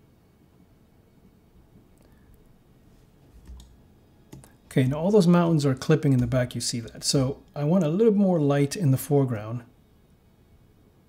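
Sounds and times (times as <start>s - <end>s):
mouse and keyboard clicks: 3.3s - 4.6s.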